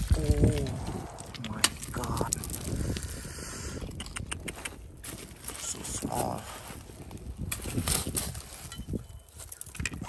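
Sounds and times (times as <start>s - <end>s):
loose stones clicking: 0.0s - 4.8s.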